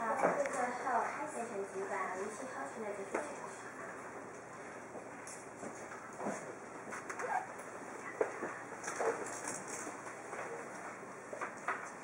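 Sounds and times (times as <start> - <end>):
small knocks and rustles: 5.0 - 7.3.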